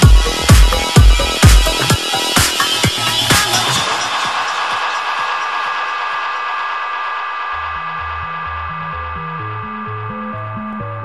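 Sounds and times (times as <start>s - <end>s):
hissy synth wash: 0.0s - 10.9s
pulsing synth bass line: 0.0s - 11.0s.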